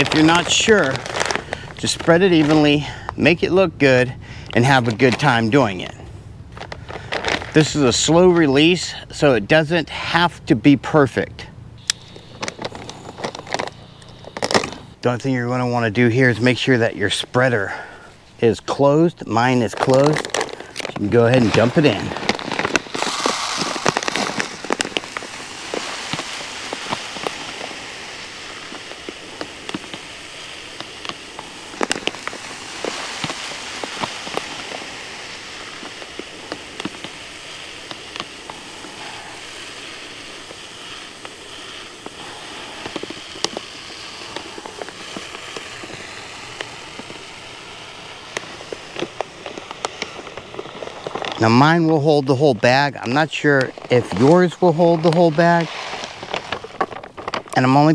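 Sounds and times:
granules pouring into plastic hopper: 0.0 - 3.0, 19.4 - 57.9.

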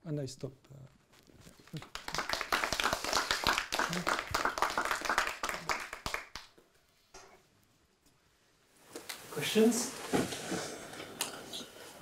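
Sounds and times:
audience applause: 1.7 - 6.5.

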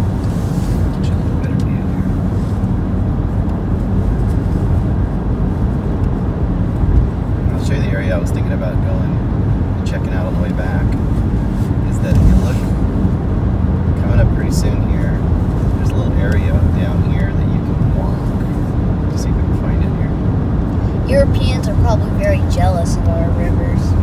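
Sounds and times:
car interior road noise: 0.0 - 24.0.

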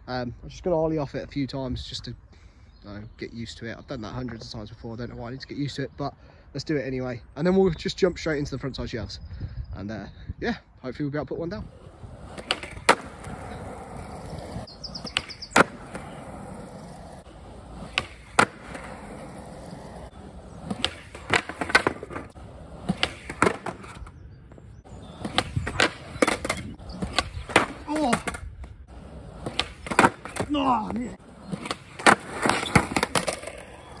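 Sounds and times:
skateboard wheels rolling on concrete: 11.5 - 34.0
skateboard landing slaps: 12.2 - 16.4, 17.8 - 19.2, 20.6 - 24.1, 25.2 - 28.7, 29.4 - 30.9, 31.6 - 33.7
skateboard tail pops: 12.3 - 13.6, 14.3 - 16.2, 17.8 - 19.0, 20.7 - 24.0.

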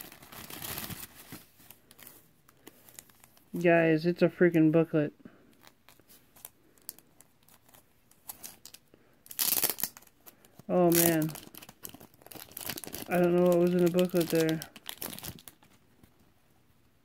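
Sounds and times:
plastic bag crinkling: 0.0 - 3.6, 5.6 - 15.8.

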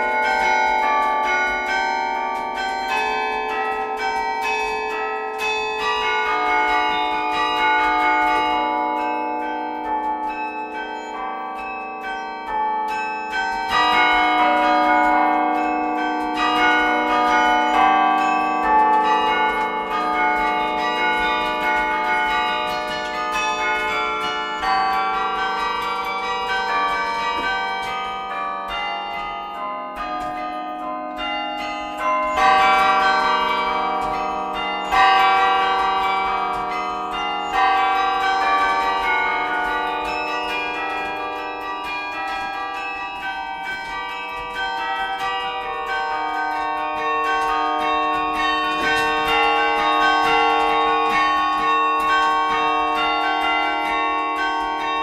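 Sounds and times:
carillon bells playing music: 0.0 - 55.0.

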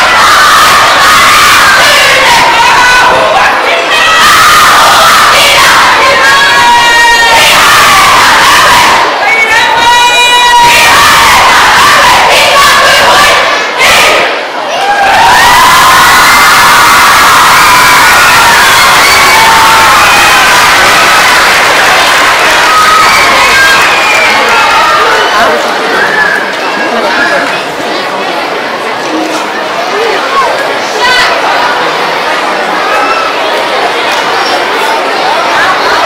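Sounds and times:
children shouting a chant: 0.0 - 27.5, 30.3 - 36.0.

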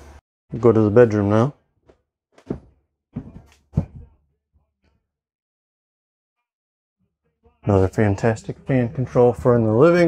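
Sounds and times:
dull footstep thuds on floor: 2.4 - 4.0.

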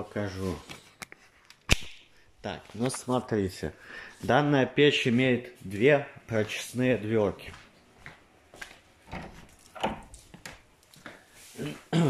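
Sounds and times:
footsteps indoors: 5.5 - 12.0.

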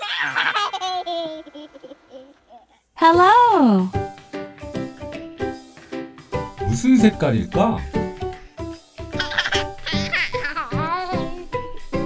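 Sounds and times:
high-pitched childlike laugh: 0.0 - 2.7, 9.2 - 11.4.

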